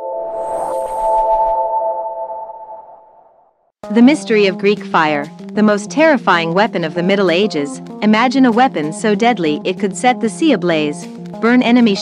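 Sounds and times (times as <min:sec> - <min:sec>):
airy shimmer: 0:00.0 - 0:01.7.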